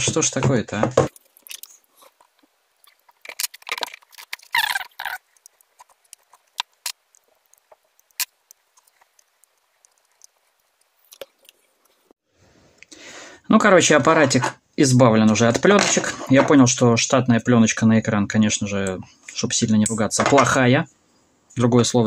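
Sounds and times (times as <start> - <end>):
plastic film crackling peel: 2.8 - 11.2.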